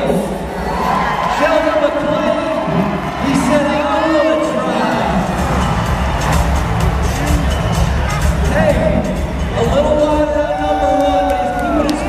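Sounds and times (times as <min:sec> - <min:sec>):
crowd noise: 0:00.0 - 0:12.0
music with steady beat: 0:05.0 - 0:12.0.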